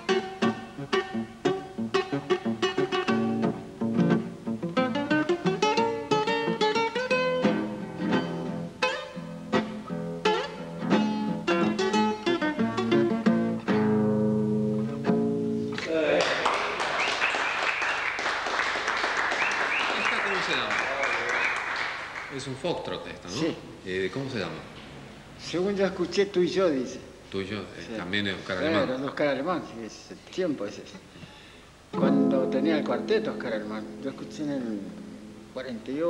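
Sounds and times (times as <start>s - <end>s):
acoustic guitar playing: 0.0s - 15.8s, 31.4s - 36.0s
applause: 15.8s - 22.6s.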